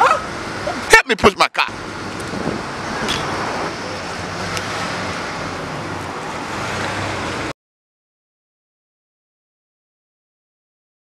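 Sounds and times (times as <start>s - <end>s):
road traffic rush: 0.0s - 7.6s.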